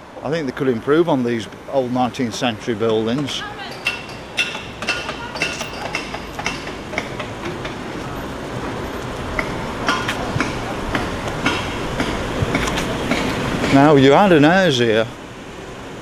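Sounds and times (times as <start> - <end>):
road traffic passing: 0.0 - 16.0.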